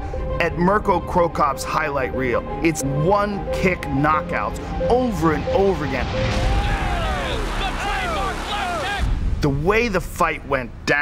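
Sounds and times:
crowd cheering and shouting: 6.3 - 9.1.

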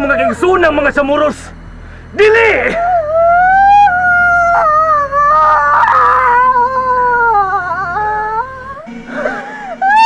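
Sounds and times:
high wailing cry of grief: 0.0 - 0.7, 2.7 - 10.0.

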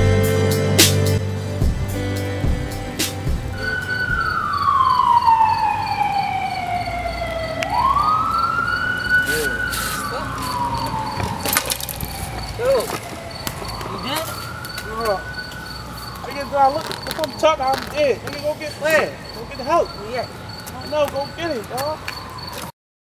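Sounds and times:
emergency vehicle siren wailing: 2.5 - 22.7.

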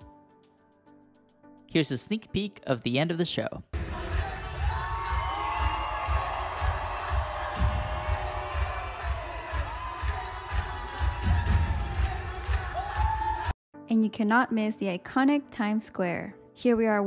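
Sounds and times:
audience cheering: 3.9 - 13.6.

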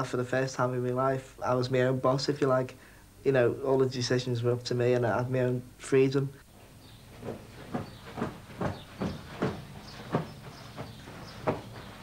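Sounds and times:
footsteps on carpet: 6.5 - 12.0.

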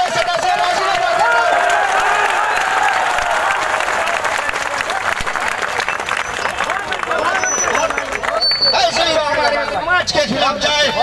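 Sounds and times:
crowd applauding: 0.0 - 10.1
voices: 0.0 - 11.0.

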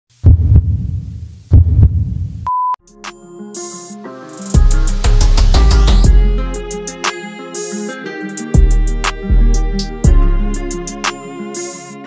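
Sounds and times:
heartbeat thumps: 0.2 - 2.5.

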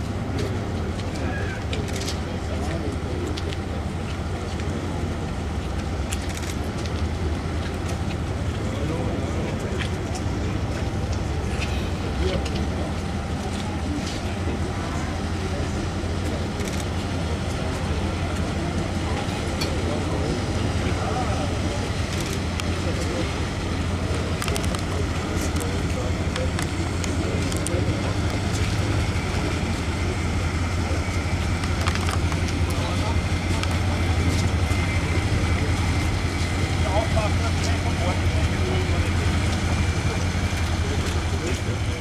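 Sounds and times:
boat engine humming: 0.0 - 42.0
people talking: 0.0 - 42.0.

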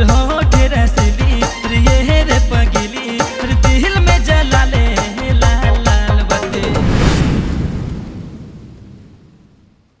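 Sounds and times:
deep rumbling boom tail: 6.6 - 9.9.

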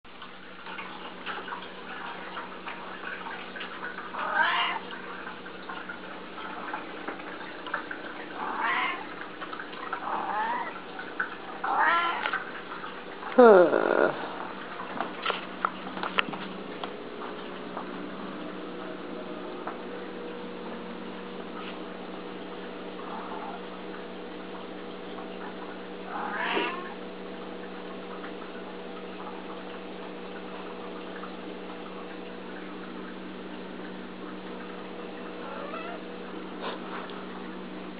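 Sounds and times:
low background hum: 0.1 - 37.9
cat meowing: 4.2 - 4.8, 8.4 - 9.0, 11.7 - 12.3, 26.1 - 26.9, 35.4 - 36.0.

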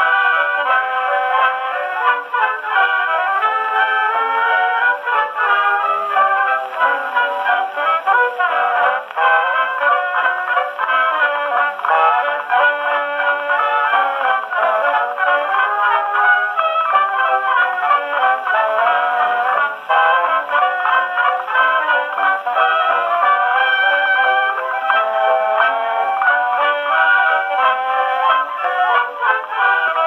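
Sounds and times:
dance band music on phonograph: 0.0 - 30.0.

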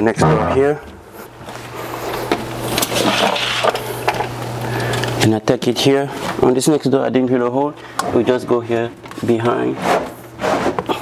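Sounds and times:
low hum: 0.1 - 1.4.

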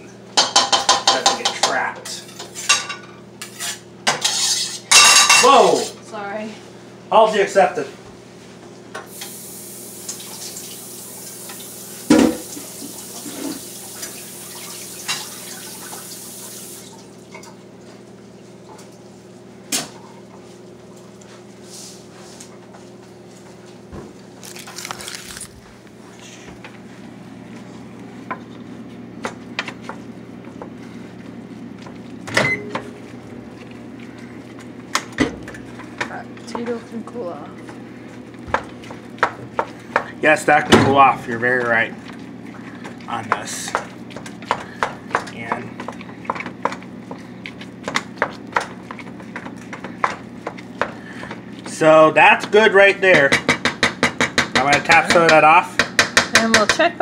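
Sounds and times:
water running from a tap: 9.1 - 17.3
wooden spoon knocking metal pot: 53.2 - 56.8.

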